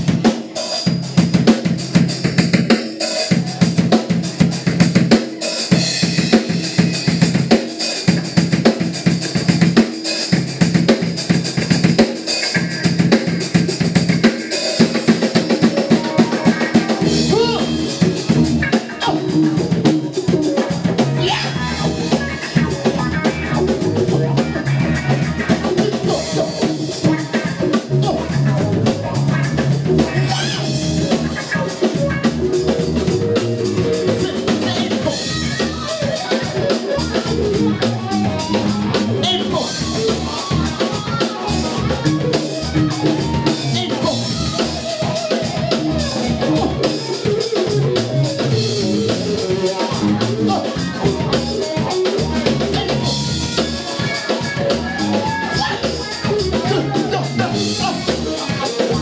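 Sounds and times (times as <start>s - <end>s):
drum kit: 0.0s - 59.0s
live band playing: 0.0s - 59.0s.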